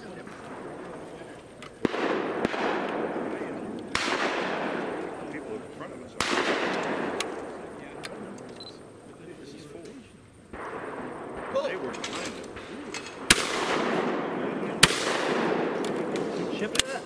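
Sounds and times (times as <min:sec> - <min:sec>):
shotgun shots echoing: 0:00.0 - 0:09.0, 0:10.5 - 0:17.0.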